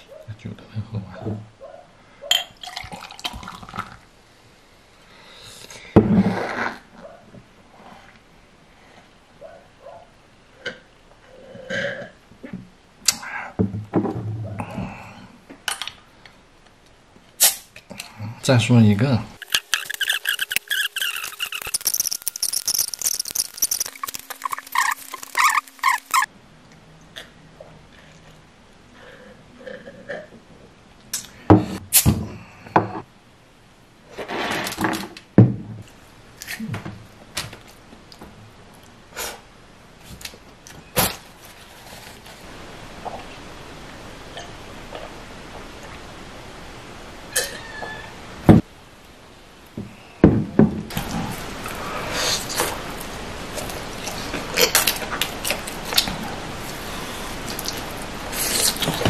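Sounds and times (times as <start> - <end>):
squeaky sped-up chattering voice: 19.4 - 26.3.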